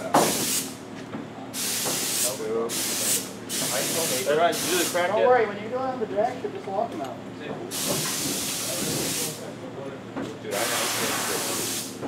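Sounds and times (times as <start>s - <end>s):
pressurized spray hissing: 10.6s - 12.0s.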